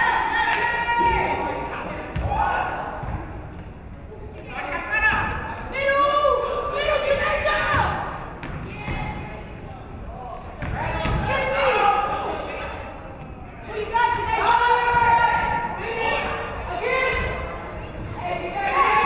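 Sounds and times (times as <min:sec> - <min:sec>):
voices calling out echoing: 0:00.0 - 0:19.0.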